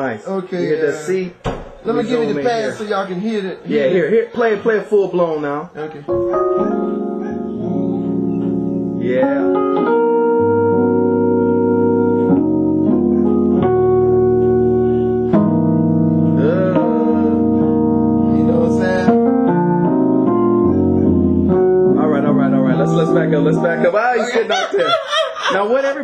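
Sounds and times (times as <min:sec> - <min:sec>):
gospel jazz chords on electronic keyboard: 0:05.5 - 0:26.0.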